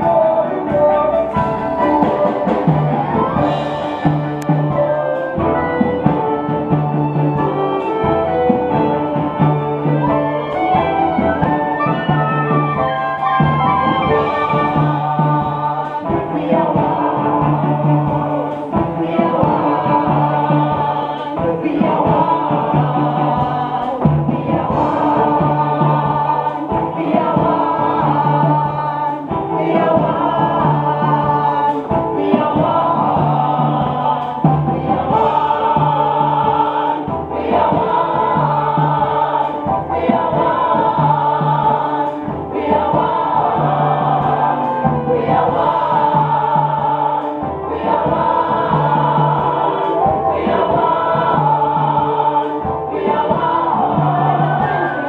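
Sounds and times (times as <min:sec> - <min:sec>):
choir singing in harmony: 0:00.0 - 0:55.0.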